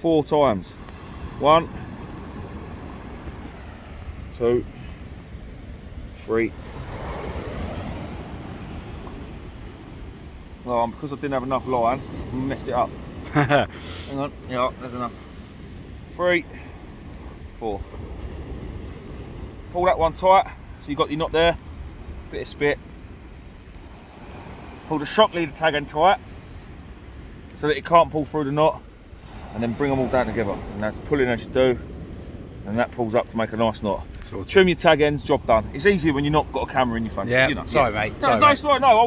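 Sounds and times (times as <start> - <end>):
wind buffeting microphone: 0.0 - 39.0
faint hiss: 13.6 - 14.3
man speaking: 24.8 - 26.2, 27.6 - 28.9, 32.7 - 39.0.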